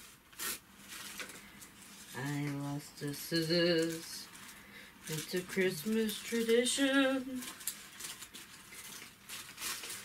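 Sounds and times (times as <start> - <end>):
tissue paper rustling: 0.0 - 10.0.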